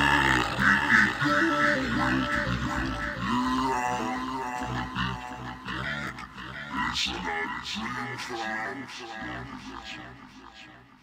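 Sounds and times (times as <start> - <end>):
drawn-out voice-like sounds: 0.0 - 11.0.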